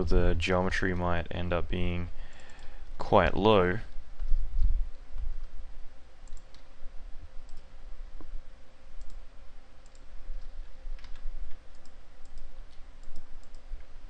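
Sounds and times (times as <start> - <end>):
low hum: 0.0 - 14.0
keyboard and mouse clicks: 6.2 - 6.7, 7.4 - 7.7, 9.0 - 9.2, 9.8 - 13.7.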